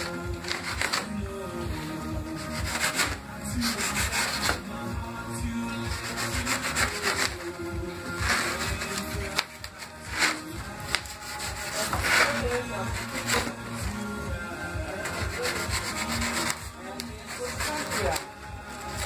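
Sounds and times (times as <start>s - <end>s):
sandpaper rubbing on styrofoam: 0.0s - 1.2s, 1.8s - 4.7s, 5.8s - 13.8s, 15.0s - 19.0s.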